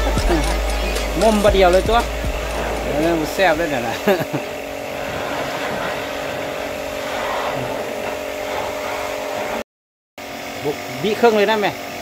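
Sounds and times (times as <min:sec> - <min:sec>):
person speaking: 0:00.0 - 0:04.6
steady motor drone: 0:00.0 - 0:09.6.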